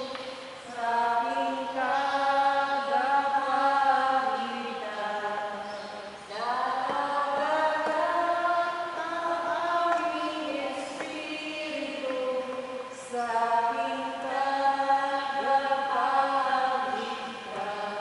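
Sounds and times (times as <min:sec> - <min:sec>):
voices singing a hymn: 0:00.0 - 0:18.0.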